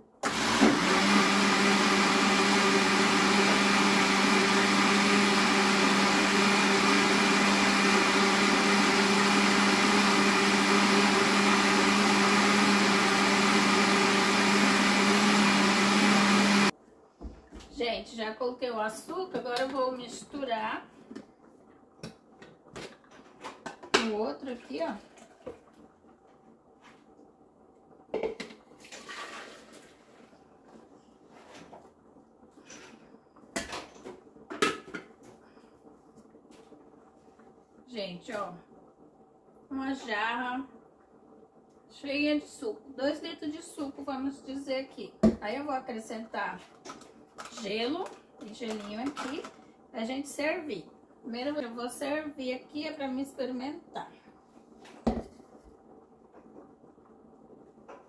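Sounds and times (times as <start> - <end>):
juice pouring: 28.7 - 30.8.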